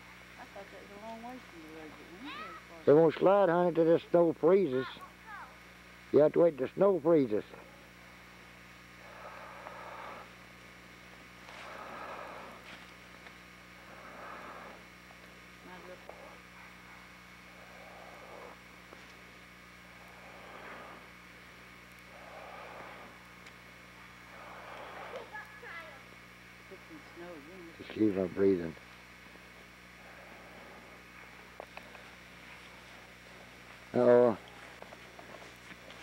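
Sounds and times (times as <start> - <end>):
steady low hum: 0.0 - 36.0
heavy breathing: 11.5 - 12.8, 19.9 - 21.2, 22.1 - 23.3, 24.2 - 25.4.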